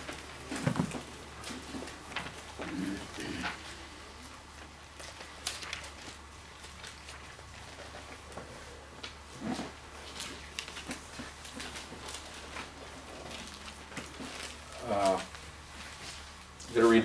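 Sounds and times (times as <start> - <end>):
pages being turned: 0.0 - 17.0
steady low hum: 0.0 - 17.0.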